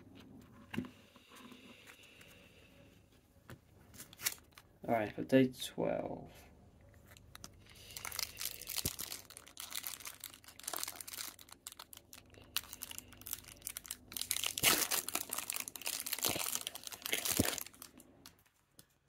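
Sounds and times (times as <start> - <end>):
foil wrapper crinkling and tearing: 4.0 - 4.7, 7.1 - 18.7.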